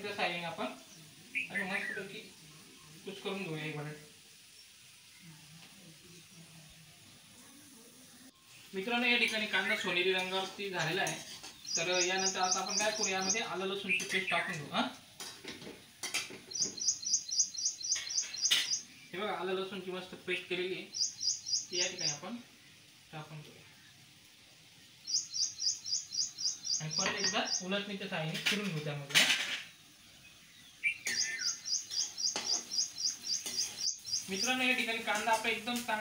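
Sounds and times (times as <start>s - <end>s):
small bird chirping: 0.8s - 3.0s, 9.4s - 14.7s, 16.0s - 19.2s, 20.8s - 22.8s, 24.8s - 27.8s, 29.6s - 34.9s.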